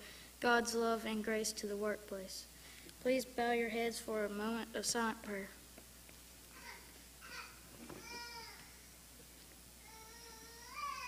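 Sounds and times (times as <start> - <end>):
baby cooing: 6.6 - 8.8.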